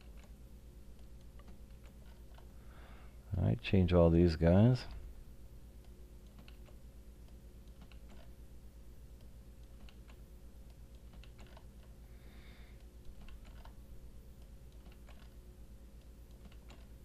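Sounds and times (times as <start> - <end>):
faint keyboard typing: 0.0 - 2.6, 5.8 - 8.4, 9.2 - 12.0, 12.8 - 13.8, 14.4 - 17.0.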